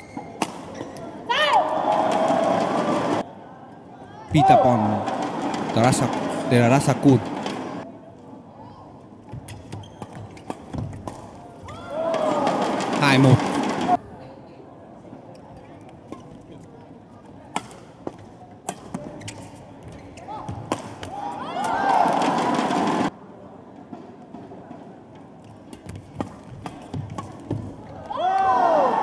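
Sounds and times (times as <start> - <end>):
shoes squeaking on court: 0.0 - 1.1, 9.3 - 11.0, 19.0 - 20.7
crowd noise: 0.0 - 9.5, 10.2 - 29.0.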